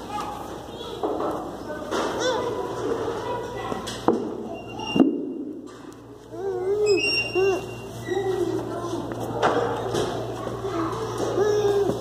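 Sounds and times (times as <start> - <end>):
young children babbling: 6.2 - 8.8, 10.6 - 12.0.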